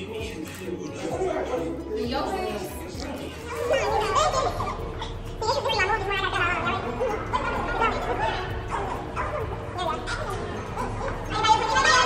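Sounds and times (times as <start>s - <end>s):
background music: 0.0s - 12.0s
people calling out: 1.0s - 12.0s.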